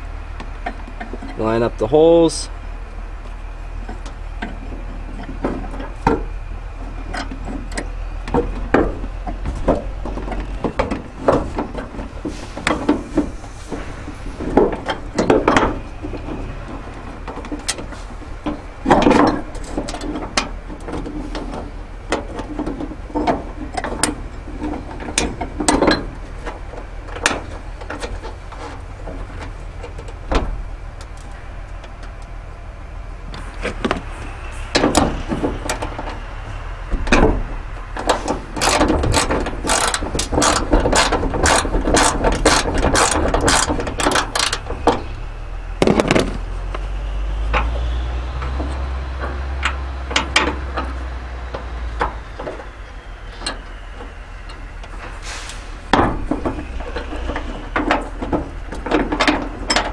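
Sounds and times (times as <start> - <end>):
metal knocks and clunks: 3.2 - 32.3, 33.3 - 59.9
socket ratchet clicking: 38.6 - 44.7.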